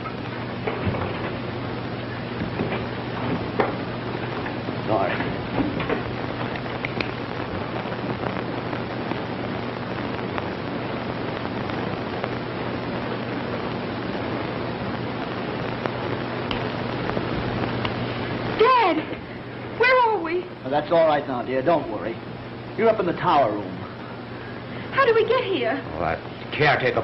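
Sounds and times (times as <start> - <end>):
film soundtrack hiss and hum: 0.0 - 27.0.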